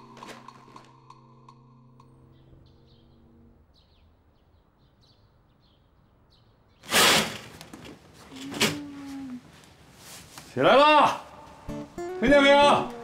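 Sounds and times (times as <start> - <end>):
soft piano music: 0.0 - 3.7, 11.7 - 13.0
curtain swishing open: 6.8 - 9.2.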